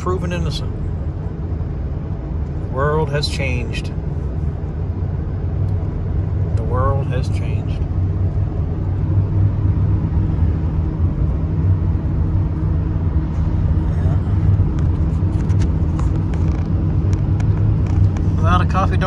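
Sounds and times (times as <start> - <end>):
vehicle engine and tyre drone: 0.0 - 19.0.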